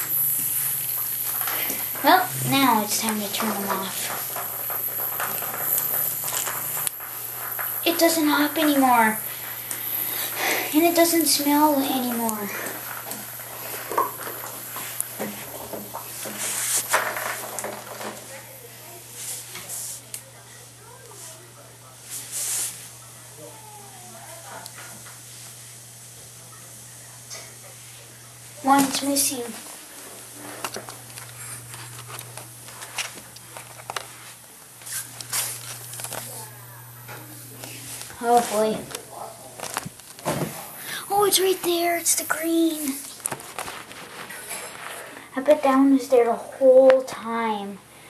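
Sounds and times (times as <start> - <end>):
steady low hum: 0.0 - 46.5
camcorder handling noise: 35.2 - 36.3, 39.6 - 40.3.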